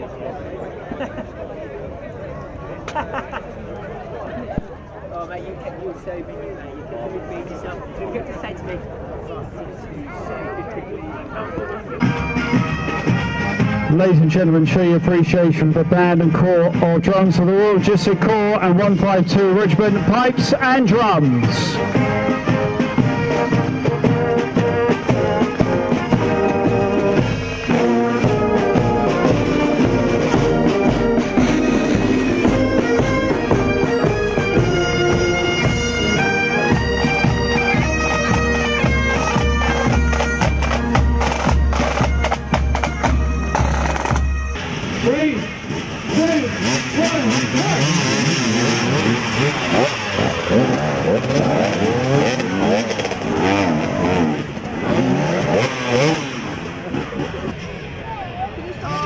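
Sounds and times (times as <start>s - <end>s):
motorcycle engines revving: 11.8s - 59.0s
military band playing a march: 11.9s - 56.4s
bass drum beat: 21.3s - 45.2s.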